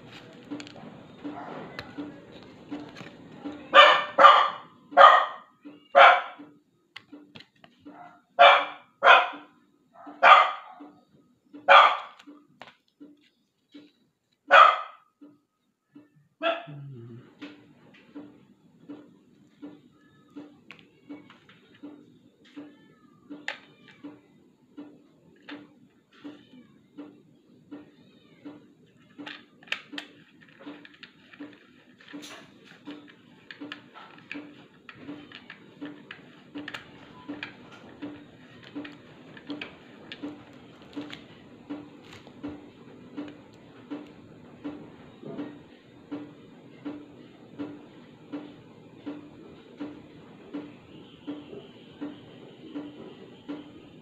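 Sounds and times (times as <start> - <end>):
dog barking: 1.3 - 1.8, 3.7 - 6.4, 7.9 - 10.9, 11.7 - 12.2, 14.5 - 15.0, 16.4 - 16.8.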